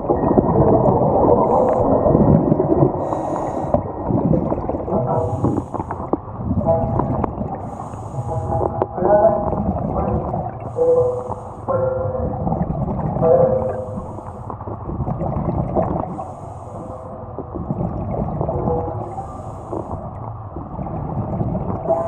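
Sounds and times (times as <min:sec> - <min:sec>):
bubbling exhalations underwater: 0:00.0 - 0:11.1, 0:11.7 - 0:16.3, 0:17.3 - 0:19.1, 0:20.6 - 0:22.0
regulator inhalation hiss: 0:03.0 - 0:03.8, 0:05.3 - 0:06.0, 0:07.6 - 0:08.7, 0:10.7 - 0:11.7.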